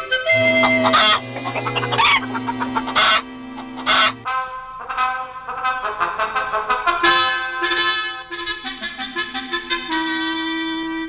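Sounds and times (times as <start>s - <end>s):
low held cartoon music notes: 0.0s - 11.0s
hen squawking: 0.3s - 4.3s.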